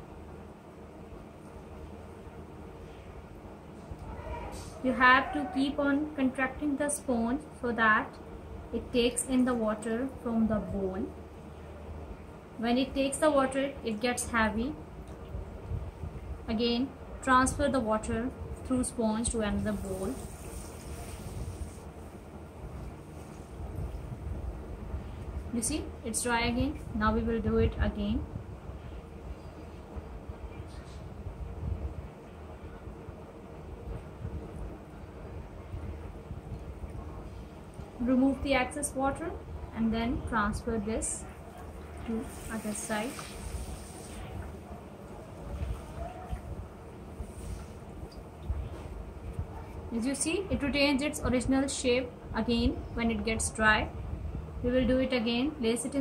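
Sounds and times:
steady low rumble: 14.4s - 55.4s
sponge squeezed into bowl: 42.2s - 44.4s.

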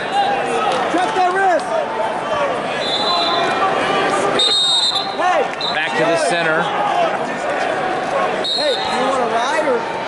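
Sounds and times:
arena crowd noise: 0.0s - 10.0s
referee's whistle blast: 2.8s - 3.6s, 4.4s - 6.0s.

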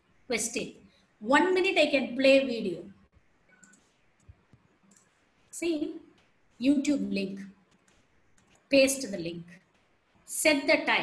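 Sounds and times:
computer mouse clicks: 3.5s - 5.5s, 7.7s - 8.7s.

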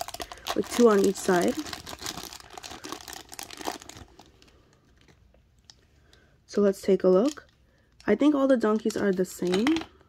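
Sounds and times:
plastic bag crinkling: 0.0s - 5.8s, 7.0s - 10.0s.

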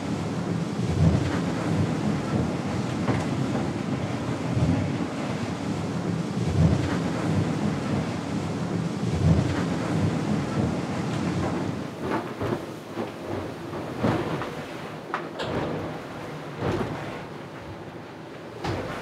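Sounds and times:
water and wind rushing on hull: 0.0s - 19.0s.

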